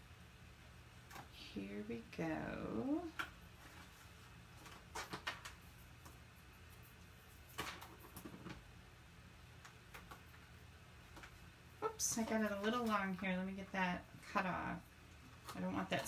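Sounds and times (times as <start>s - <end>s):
adhesive tape rustling and tapping: 3.2s - 8.6s.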